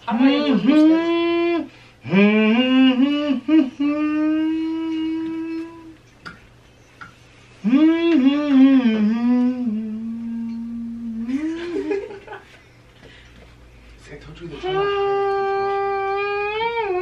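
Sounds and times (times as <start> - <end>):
person humming a melody: 0.1 - 6.0, 7.6 - 12.1, 14.6 - 17.0.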